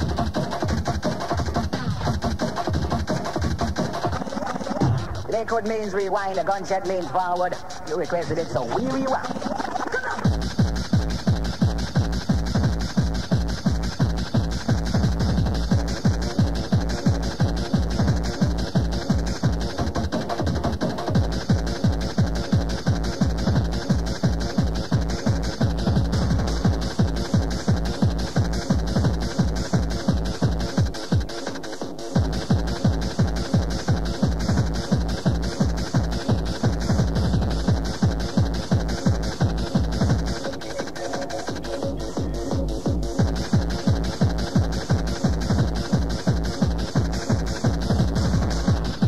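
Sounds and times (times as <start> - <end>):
distorted synth sounds: 0.0 - 49.0
fast kick drum: 0.0 - 49.0.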